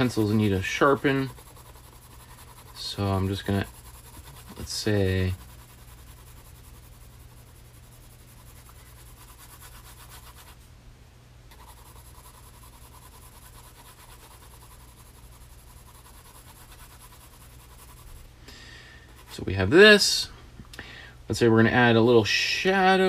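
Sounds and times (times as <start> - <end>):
pencil shading on paper: 0.0 - 10.6, 11.5 - 18.2.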